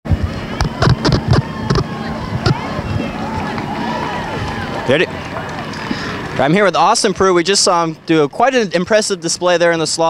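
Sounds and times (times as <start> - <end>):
chatter of many voices: 0.3 - 8.1.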